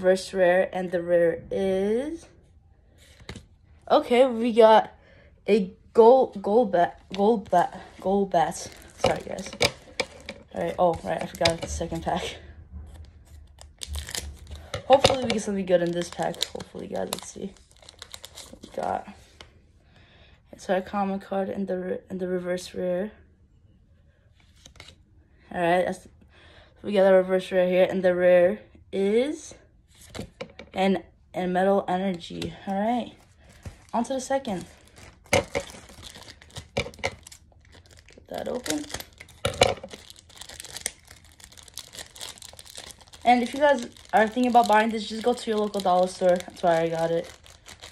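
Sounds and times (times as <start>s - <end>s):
wrapper crinkling: 6.9s - 19.1s, 33.3s - 47.9s
scissors snipping wrapper: 13.5s - 18.8s, 34.8s - 47.9s.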